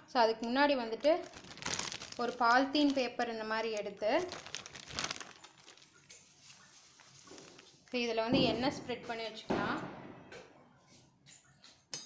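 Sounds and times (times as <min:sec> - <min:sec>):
plastic sheet crinkling: 0:00.9 - 0:08.2.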